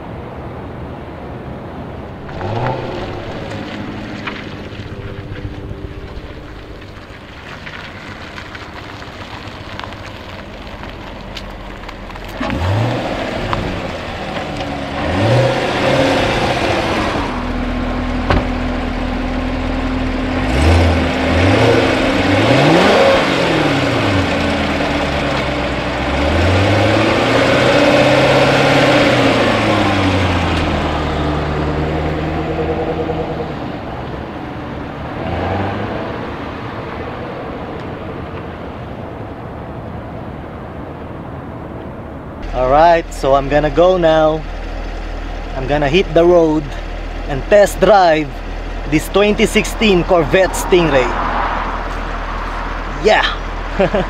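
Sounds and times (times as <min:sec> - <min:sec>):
car engine revving and accelerating: 0:02.2 - 0:38.5, 0:42.4 - 0:54.0.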